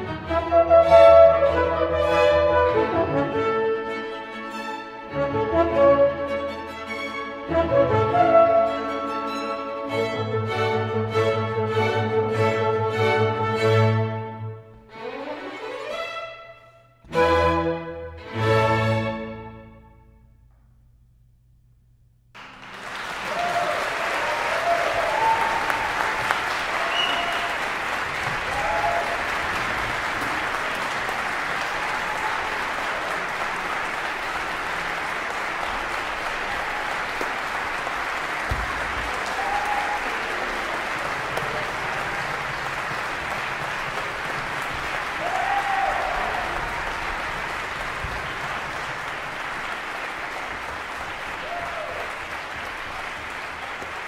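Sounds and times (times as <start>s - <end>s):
audience applause: 22.4s - 54.0s
shouted whoops: 23.2s - 27.7s, 28.4s - 29.3s, 31.6s - 32.6s, 39.2s - 40.4s, 45.2s - 47.0s, 51.4s - 52.2s.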